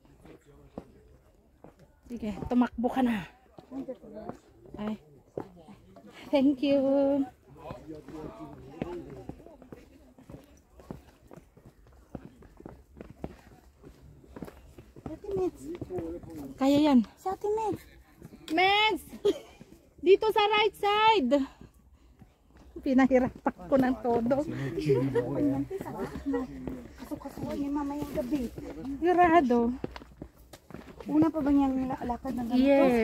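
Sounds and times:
footsteps on trail: 0.0s - 33.0s.

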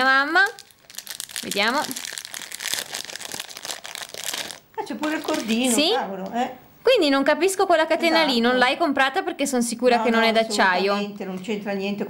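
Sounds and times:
plastic bag crinkling: 0.0s - 5.8s.

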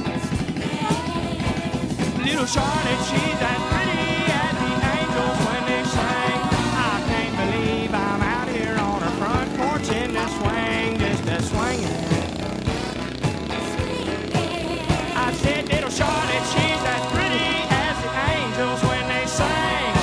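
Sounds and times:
country song with full band: 0.0s - 20.0s.

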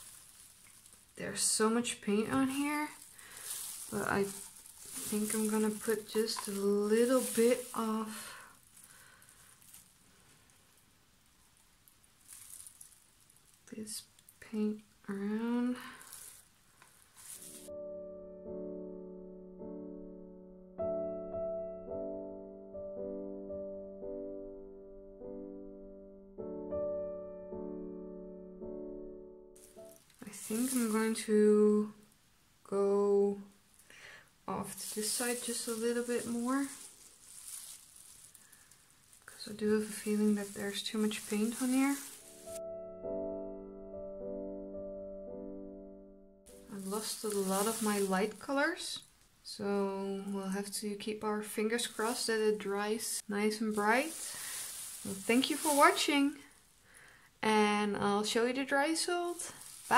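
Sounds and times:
faint rustle: 0.0s - 17.7s, 29.6s - 32.0s, 33.8s - 42.6s, 46.5s - 49.2s, 51.4s - 57.2s, 58.8s - 59.9s
soft handling sounds: 0.0s - 17.7s, 29.6s - 31.8s, 34.5s - 42.6s, 46.5s - 49.3s, 51.6s - 56.6s, 59.0s - 59.9s
faint steady hiss: 0.0s - 18.8s, 29.6s - 42.6s, 46.5s - 59.9s.

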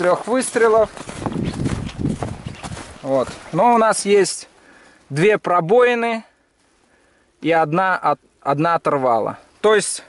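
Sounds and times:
footsteps in snow: 0.0s - 5.3s.

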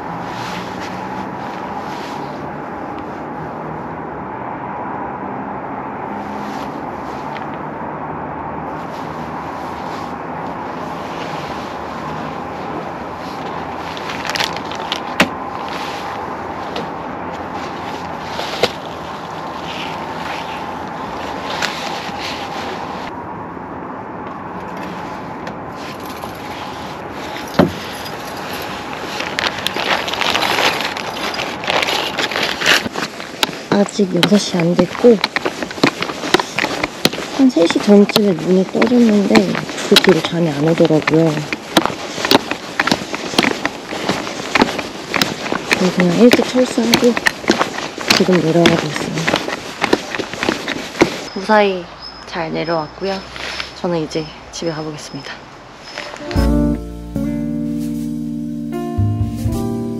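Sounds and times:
distant city traffic hum: 0.0s - 59.9s
camping gear clicking and rustling: 11.0s - 23.1s, 25.8s - 51.4s.

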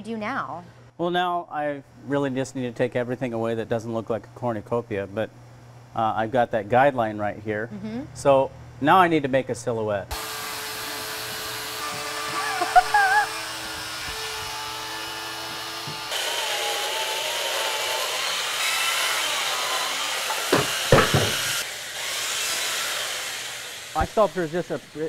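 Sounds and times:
chainsaw cutting ice: 10.1s - 25.0s
sharp knocks: 20.3s - 21.6s.

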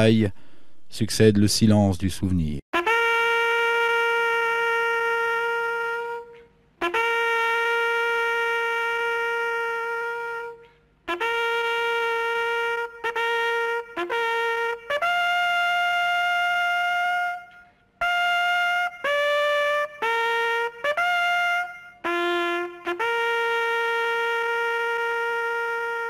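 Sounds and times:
brass instrument long note: 2.8s - 26.0s
bugle call: 2.8s - 26.0s.

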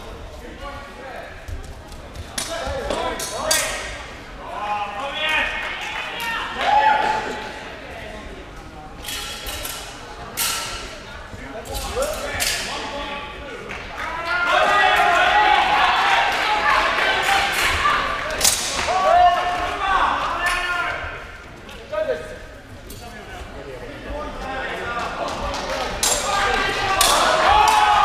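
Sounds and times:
people talking in echoing hall: 0.0s - 28.0s.

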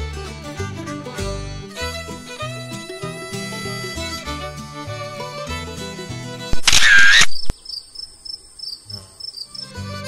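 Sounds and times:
fiddle and guitar music: 0.0s - 7.5s, 9.5s - 10.0s
camera shutter: 6.6s - 7.5s
crickets chirping: 6.8s - 9.9s.

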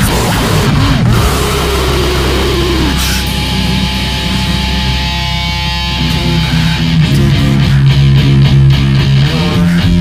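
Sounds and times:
distorted guitars: 0.0s - 10.0s
low drone: 0.0s - 10.0s.

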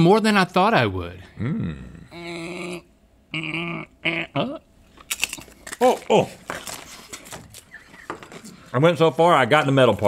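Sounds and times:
man's wordless vocal sounds: 1.2s - 4.7s.

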